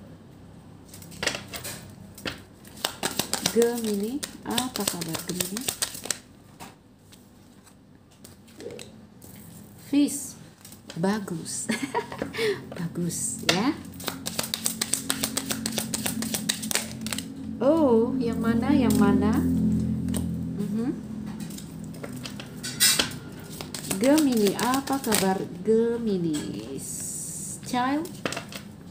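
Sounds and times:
cards being shuffled: 2.2 - 6.3, 13.9 - 17.3, 23.4 - 25.4.

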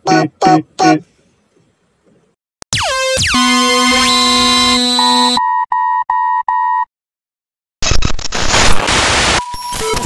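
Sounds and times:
loud steady buzzing tone: 2.8 - 5.4
short repeated beeps: 3.4 - 6.9.

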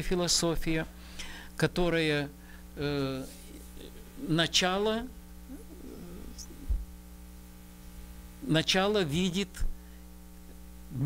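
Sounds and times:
electrical mains hum: 0.0 - 11.0.

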